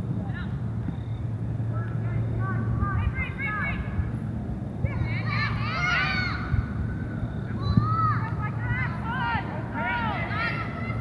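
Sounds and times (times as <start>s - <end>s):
distant people shouting: 4.8s - 11.0s.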